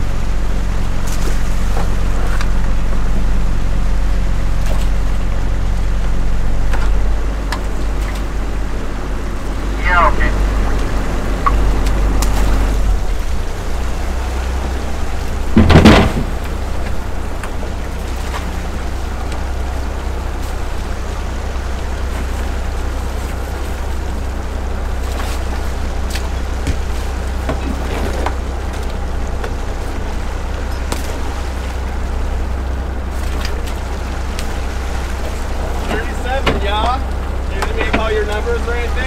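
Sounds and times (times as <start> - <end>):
boat engine running: 0.0 - 39.0
loud thump: 15.5 - 16.5.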